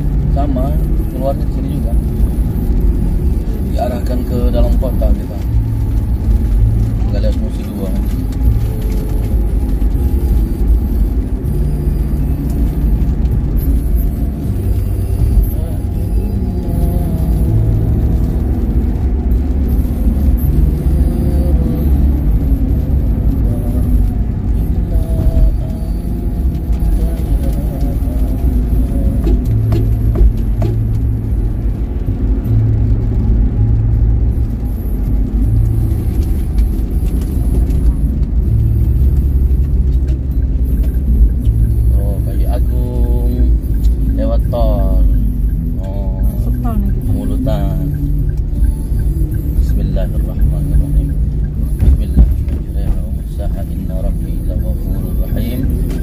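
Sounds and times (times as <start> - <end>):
music playing: 0.0 - 56.0
road and tyre rumble in car: 0.0 - 56.0.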